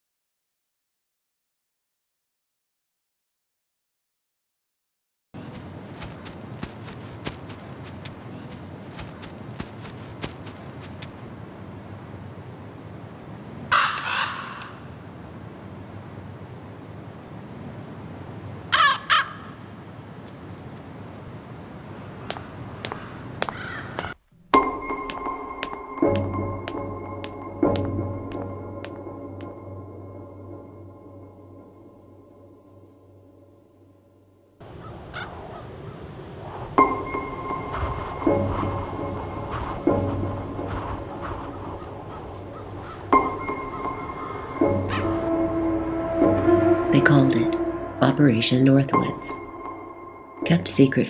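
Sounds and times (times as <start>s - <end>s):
crow cawing: 13.7s - 14.9s, 18.7s - 19.7s, 22.9s - 24.2s, 34.7s - 36.0s, 40.6s - 45.2s.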